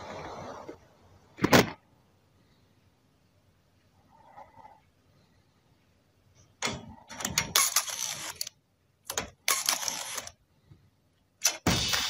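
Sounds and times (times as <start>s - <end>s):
sharp mechanical clicks and rattling: 6.6s - 10.4s.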